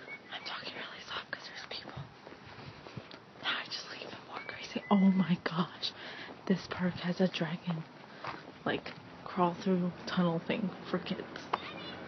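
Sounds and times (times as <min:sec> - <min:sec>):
soft whispering: 0:00.3 - 0:02.1, 0:03.4 - 0:07.8.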